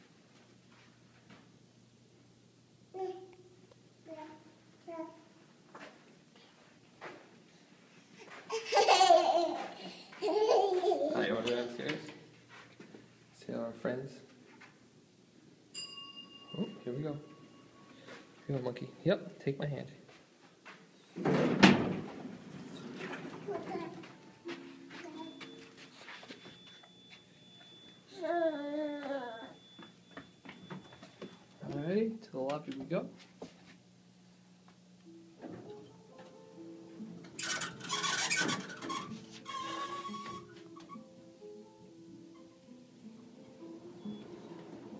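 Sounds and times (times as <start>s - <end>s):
toddler laughing: 8.5s - 11.3s, 23.4s - 24.2s
faint high whine: 15.7s - 20.0s
short chime: 15.8s - 18.2s
elevator doors sliding with thud: 21.2s - 24.8s, 43.8s - 44.9s
toddler singing high-pitched: 28.1s - 29.6s.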